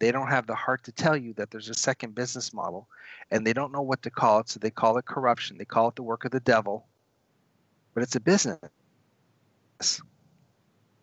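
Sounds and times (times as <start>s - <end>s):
man's sharp breath: 2.9s - 3.3s.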